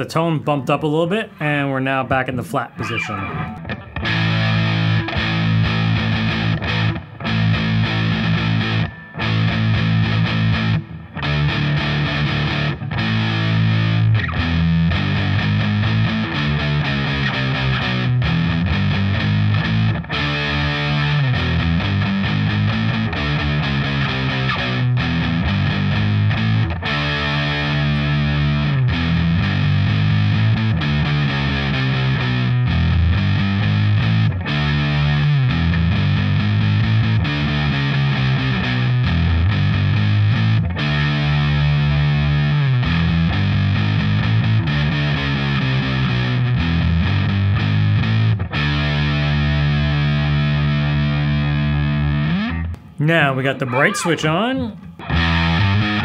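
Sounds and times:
distorted electric guitar riffs: 0.0s - 56.0s.

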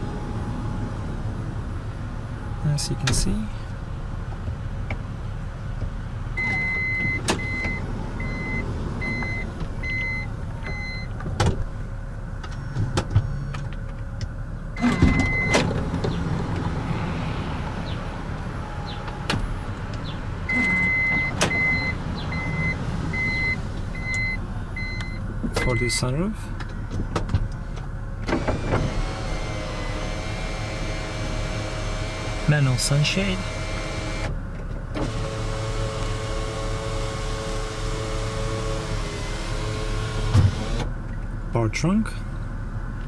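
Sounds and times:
door warning chime beeping: 6.4s - 11.1s, 14.8s - 15.6s, 20.5s - 26.0s
sliding door mechanism clunks: 28.2s - 29.1s.

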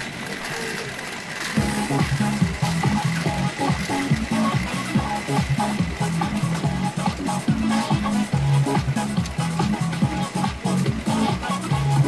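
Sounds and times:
electronic dance music: 1.6s - 12.0s.

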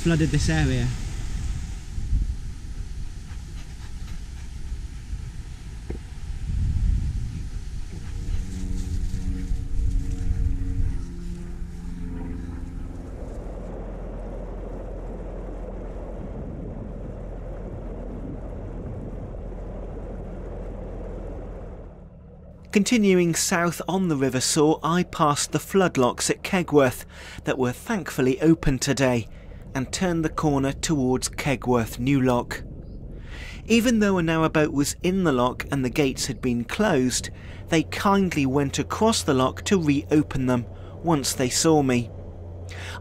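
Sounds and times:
wind buffeting microphone: 0.0s - 22.5s, 28.4s - 42.7s
steady low rumble: 0.0s - 43.0s.

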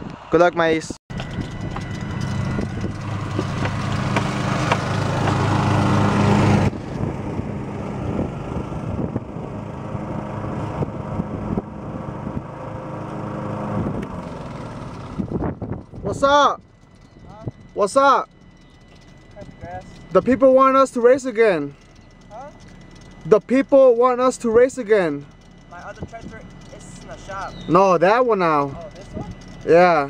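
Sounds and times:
car engine and road noise: 0.0s - 30.0s
riding lawn mower engine: 0.0s - 30.0s.

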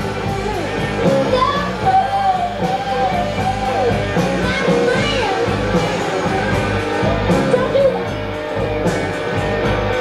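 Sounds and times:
person singing: 0.0s - 8.1s
bass guitar: 0.0s - 10.0s
drums: 0.0s - 10.0s
electric guitar: 0.0s - 10.0s.

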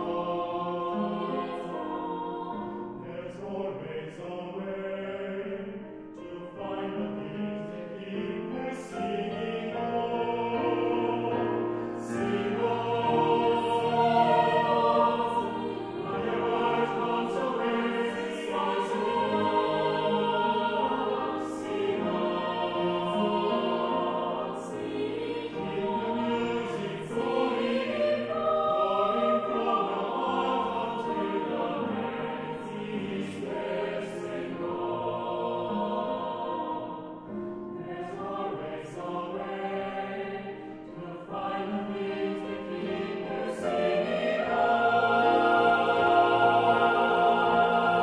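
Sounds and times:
mixed choir singing: 0.0s - 48.0s.

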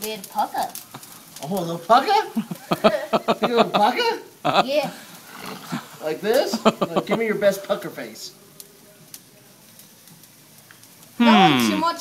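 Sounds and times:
faint steady background hiss: 0.0s - 12.0s.

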